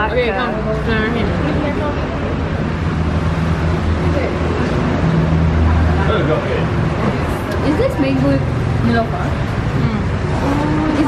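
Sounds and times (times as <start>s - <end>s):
road traffic engine hum: 0.0s - 11.0s.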